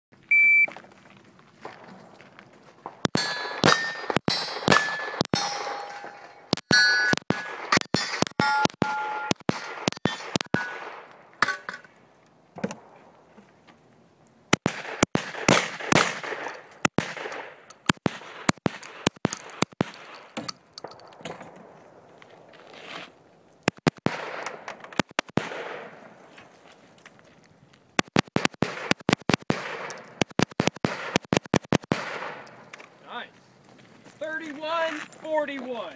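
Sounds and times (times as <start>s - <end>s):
sharp gunshots: 3.0s - 11.1s, 14.5s - 20.3s, 23.7s - 26.1s, 28.0s - 32.6s
ringing of hit steel targets: 3.1s - 11.8s.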